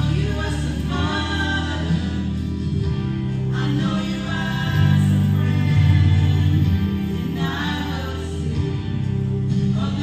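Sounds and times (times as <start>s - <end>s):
several voices singing into microphones: 0.0s - 10.0s.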